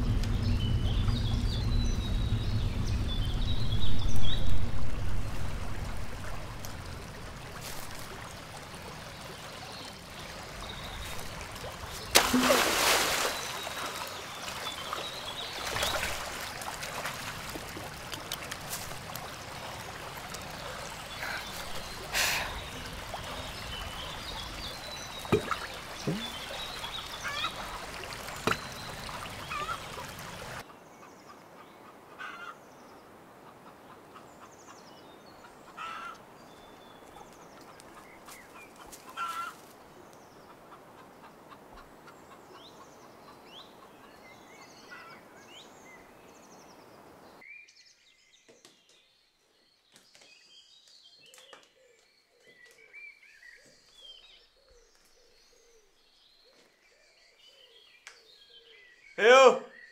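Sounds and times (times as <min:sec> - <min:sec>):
birds singing and calling: 0:00.0 - 0:05.4, 0:20.4 - 0:33.0, 0:34.3 - 0:59.9
water pouring and trickling: 0:00.0 - 0:30.6.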